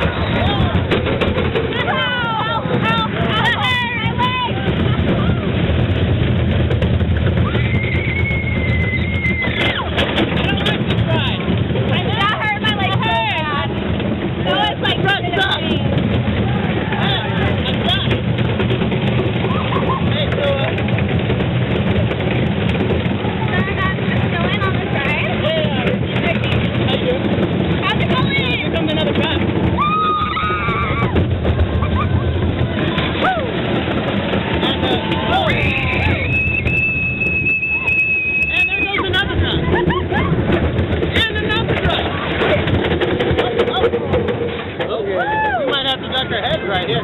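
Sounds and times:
roller coaster train rumbling: 0.0 - 47.0
riders screaming and yelling: 1.5 - 6.1, 7.2 - 11.1, 14.4 - 18.4, 19.0 - 27.3, 29.4 - 42.8, 45.0 - 46.1.

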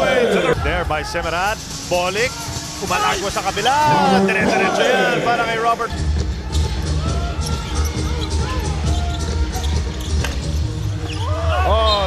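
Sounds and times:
background music with heavy bass: 5.9 - 12.0.

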